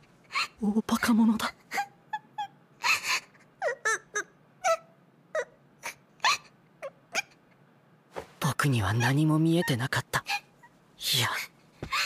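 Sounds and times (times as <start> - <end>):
girl sobbing: 1.7 - 7.0.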